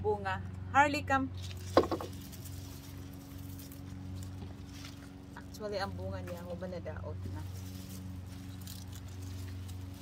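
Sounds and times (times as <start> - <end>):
steady low hum: 0.0 - 10.0
plant leaves rustling and crackling: 1.4 - 10.0.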